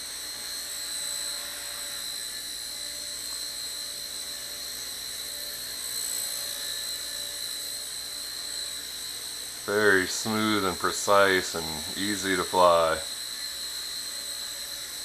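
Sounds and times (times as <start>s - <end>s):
toy helicopter rotor whine: 0.0s - 15.0s.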